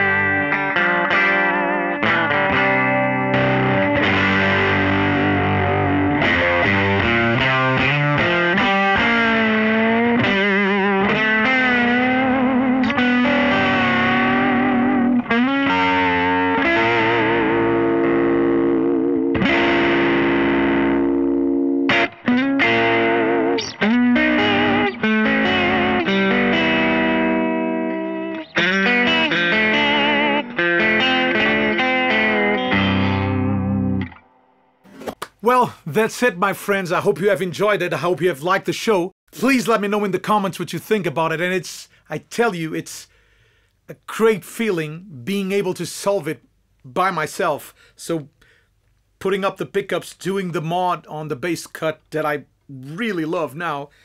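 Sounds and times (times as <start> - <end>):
overdriven electric guitar: 0.0 - 34.8.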